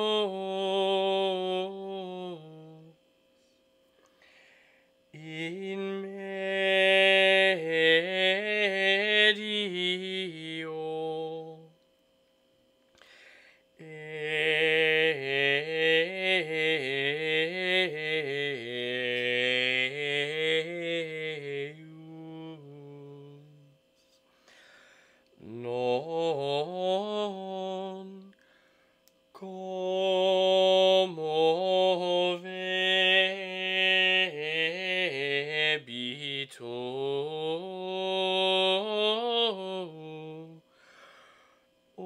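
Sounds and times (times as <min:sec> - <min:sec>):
man singing chant unaccompanied: 0:00.0 - 0:03.0, 0:05.1 - 0:11.8, 0:13.8 - 0:23.9, 0:25.4 - 0:28.4, 0:29.3 - 0:40.7.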